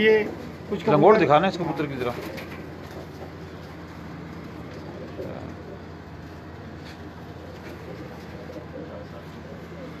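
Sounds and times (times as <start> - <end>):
pigeons cooing: 0.2 - 10.0.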